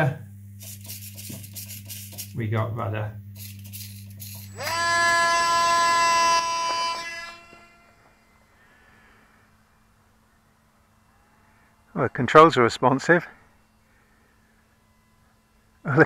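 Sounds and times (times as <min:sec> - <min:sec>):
low hum: 0:00.0 - 0:16.0
electric motor propeller whine: 0:03.3 - 0:16.0.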